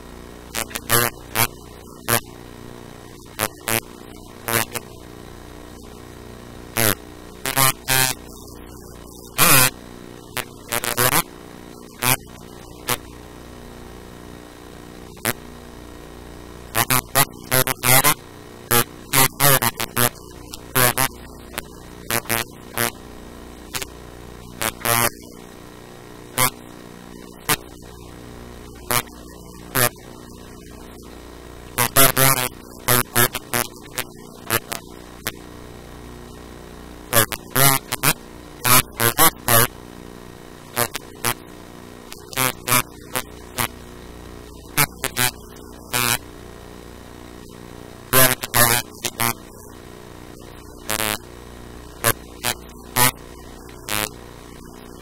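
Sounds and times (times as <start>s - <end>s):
electrical hum: 0.0s - 55.0s.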